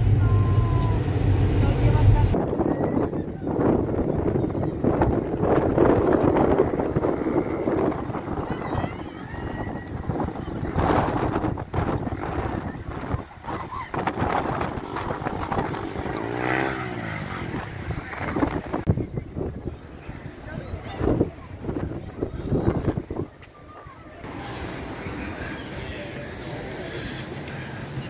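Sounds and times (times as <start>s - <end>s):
wind on microphone: 0.0s - 23.5s
road traffic passing: 0.0s - 28.0s.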